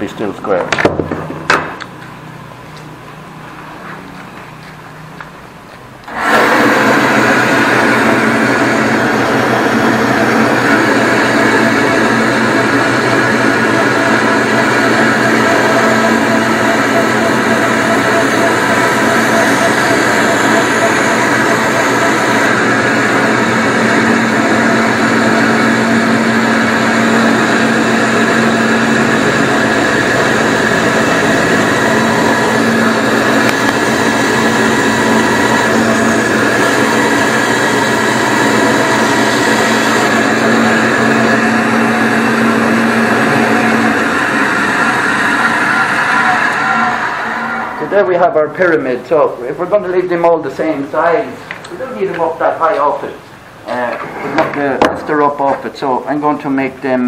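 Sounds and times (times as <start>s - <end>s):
bandsaw motor running: 6.0s - 53.0s.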